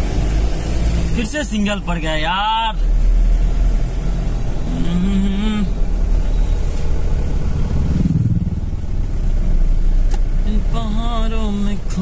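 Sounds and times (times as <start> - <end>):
car engine rumble inside cabin: 0.0 - 12.0.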